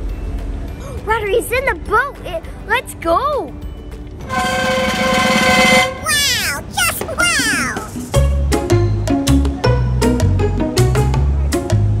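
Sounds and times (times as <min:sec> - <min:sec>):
buzzy held tone: 0:04.2 - 0:06.0.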